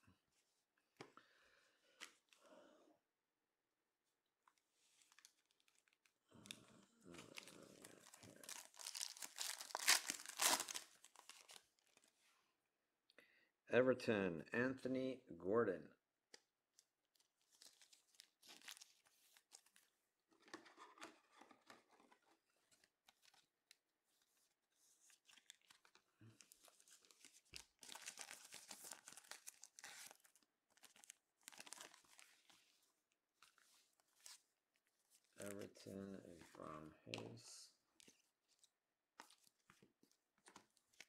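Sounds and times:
plastic and foil crinkling: 5.0s - 6.1s, 7.1s - 12.1s, 17.2s - 19.9s, 25.1s - 32.8s.

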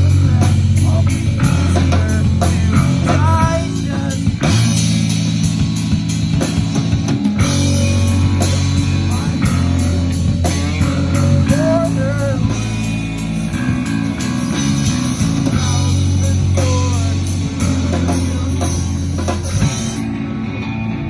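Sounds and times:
electric guitar bending notes: 0.0s - 21.0s
live rock band playing: 0.0s - 21.0s.

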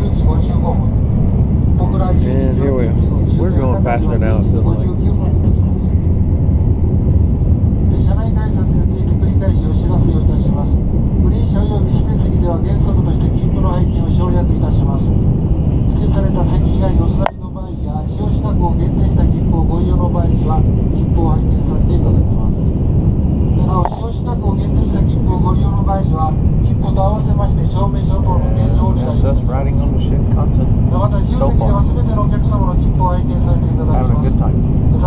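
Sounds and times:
train cabin low rumble: 0.0s - 35.0s
indistinct voices talking: 1.8s - 5.8s, 23.5s - 35.0s.

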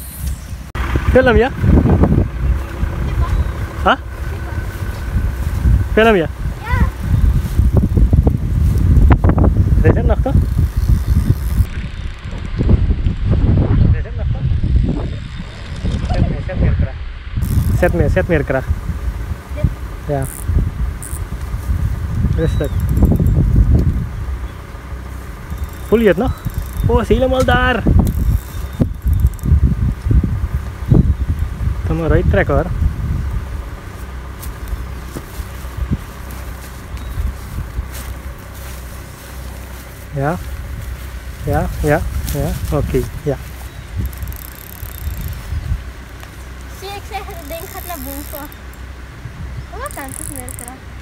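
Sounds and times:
wind rumble on microphone: 0.0s - 51.0s
fishing reel ticking: 10.2s - 12.3s, 17.4s - 18.0s, 20.2s - 21.2s, 22.6s - 23.4s, 25.4s - 29.6s, 44.0s - 45.5s, 47.4s - 48.8s, 49.9s - 50.8s.

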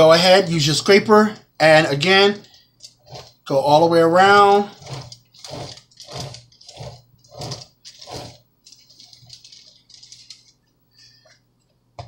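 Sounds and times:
cake scraper scraping buttercream: 2.9s - 9.7s.

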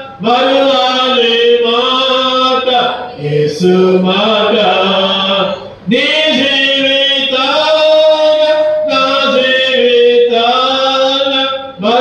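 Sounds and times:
chant-like hymn singing: 0.0s - 12.0s.

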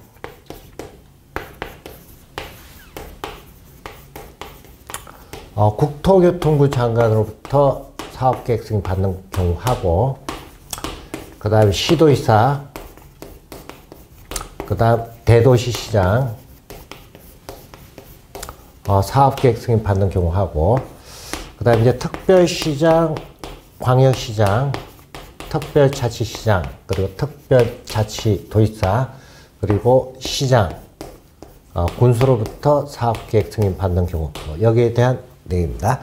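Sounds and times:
chalk scratching: 0.0s - 34.9s
chalk strokes and taps: 0.0s - 35.0s.

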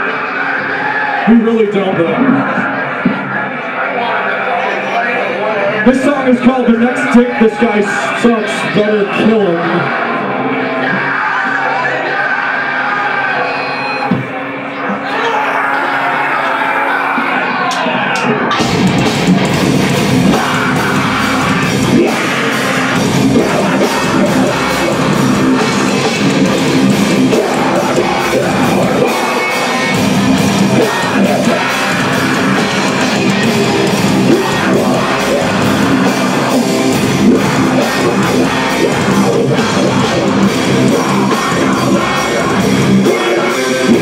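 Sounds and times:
heavy metal band playing: 0.0s - 44.0s
drums and cymbals: 18.5s - 44.0s.

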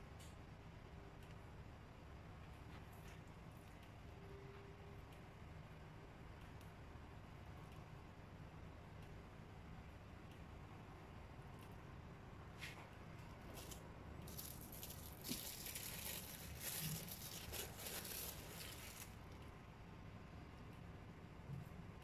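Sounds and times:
plastic film crinkling: 13.5s - 19.4s.

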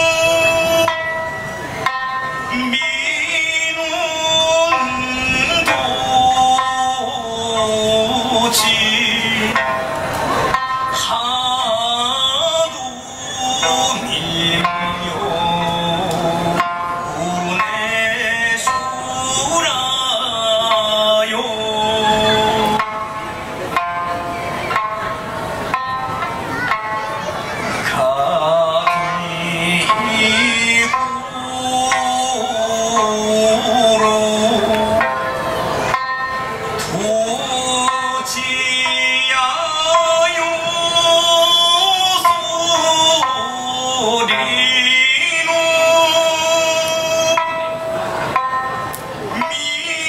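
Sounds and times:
man singing: 0.0s - 23.0s, 27.8s - 36.0s, 36.6s - 50.0s
plucked lute notes: 0.0s - 49.6s.

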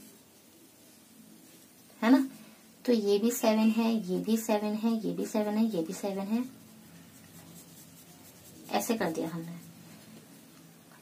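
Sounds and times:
pencil scratching on paper: 5.4s - 9.8s.

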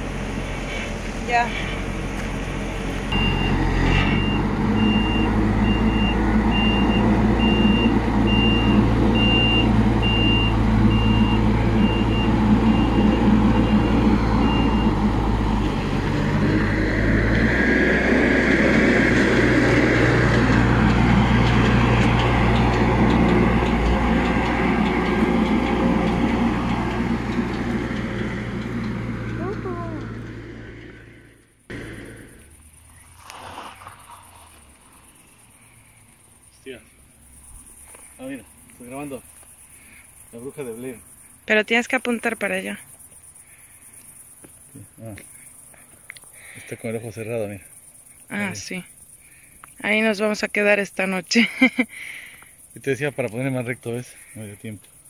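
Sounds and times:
diesel engine running: 0.0s - 54.9s
reversing alarm beeping: 3.1s - 15.9s.

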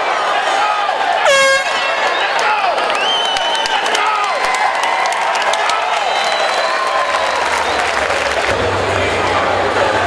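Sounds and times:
arena crowd shouting: 0.0s - 10.0s
air horn blast: 1.2s - 1.9s.

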